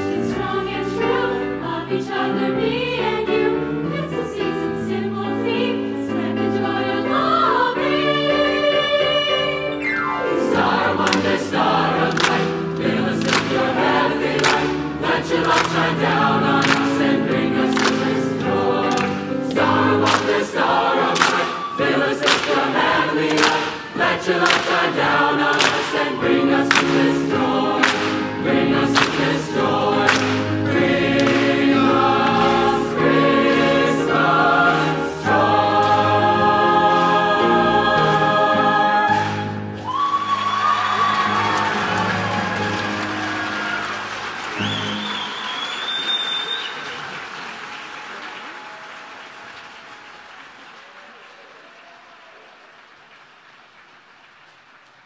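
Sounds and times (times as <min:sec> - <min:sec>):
mixed choir singing: 0:00.0 - 0:45.6.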